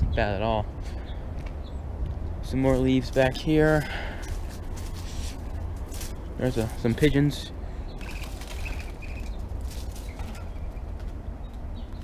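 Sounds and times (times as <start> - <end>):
steady rustle: 2.4 - 11.6
high bird chirps: 7.8 - 10.9.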